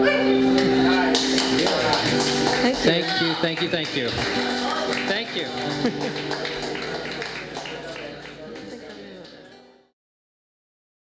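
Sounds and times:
sharp claps: 1.1 - 9.4.

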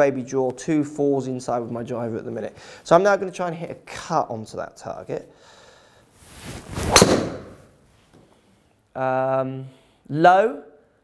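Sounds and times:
golf club swing whoosh: 6.2 - 7.8
golf ball impact crack: 6.7 - 7.7.

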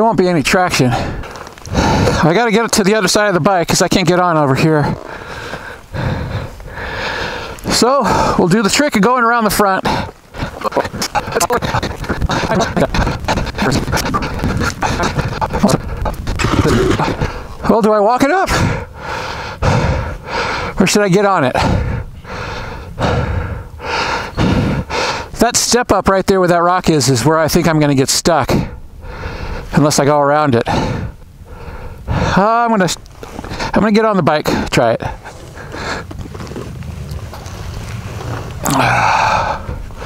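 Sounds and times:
person breathing hard: 0.9 - 2.3, 5.0 - 8.4, 9.8 - 17.6, 18.5 - 20.8, 21.6 - 25.4, 28.6 - 29.7, 30.6 - 32.4, 34.5 - 36.2, 38.6 - 40.0
wind rumble on microphone: 9.9 - 17.7.

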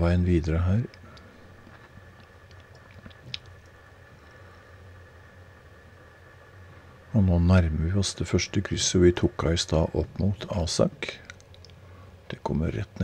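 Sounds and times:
faint background hum: 0.0 - 13.0
soft clicks: 11.2 - 11.8.

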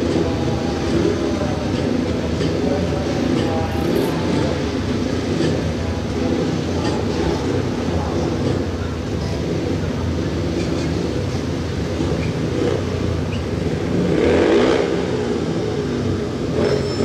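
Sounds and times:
motorcycle engines droning: 0.0 - 17.0.

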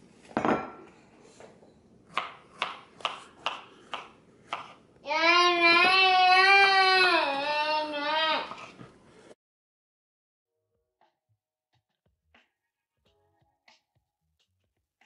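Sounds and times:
knife chopping on plastic board: 2.1 - 4.9.

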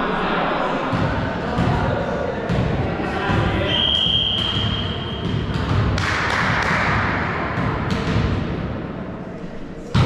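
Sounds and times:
sports hall noise: 0.0 - 10.0
referee's whistle blast: 3.6 - 5.2.

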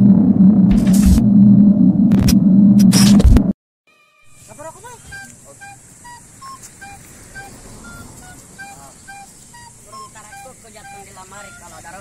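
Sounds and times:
steady high hiss: 4.4 - 12.0
faint voices talking: 4.5 - 12.0.

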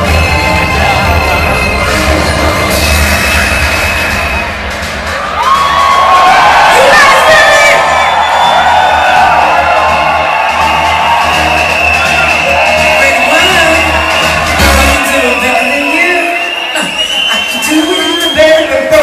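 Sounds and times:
audience screaming and cheering: 0.0 - 19.0
live concert music with heavy bass: 0.0 - 19.0.

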